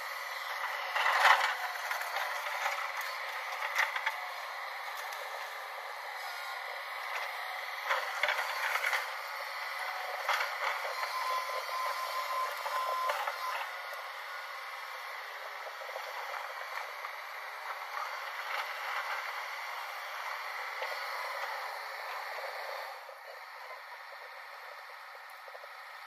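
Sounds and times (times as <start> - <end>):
excavator machine noise: 0.0 - 26.0.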